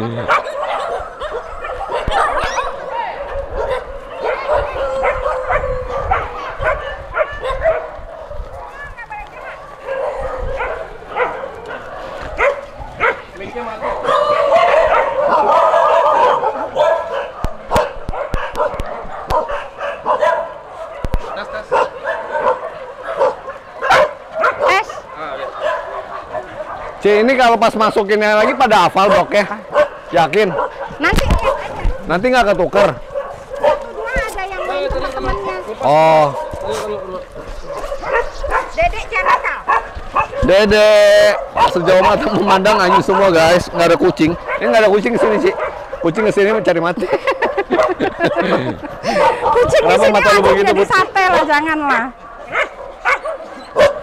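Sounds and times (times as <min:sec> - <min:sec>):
pack of dogs barking: 0:00.0 - 0:54.0.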